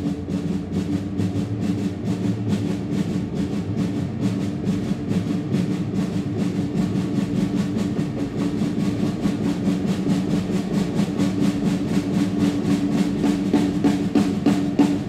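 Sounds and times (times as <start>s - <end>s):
rapid drum strokes: 0.0s - 15.0s.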